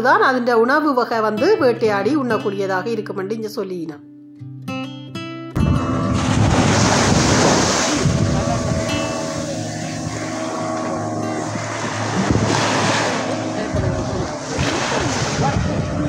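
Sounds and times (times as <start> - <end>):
wind buffeting microphone: 5.6 - 16.0
small waves washing on shore: 6.1 - 16.0.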